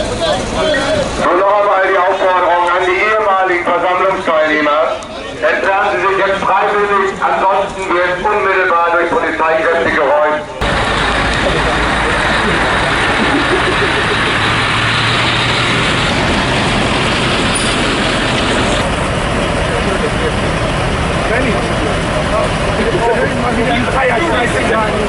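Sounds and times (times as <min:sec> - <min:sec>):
crowd voices: 0:00.0 - 0:25.0
truck engine running: 0:00.0 - 0:25.0.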